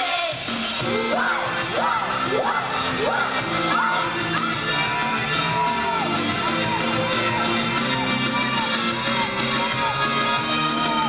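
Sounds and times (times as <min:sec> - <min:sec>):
pop song over loudspeakers: 0:00.0 - 0:11.0
group singing: 0:00.8 - 0:11.0
audience cheering: 0:01.1 - 0:11.0.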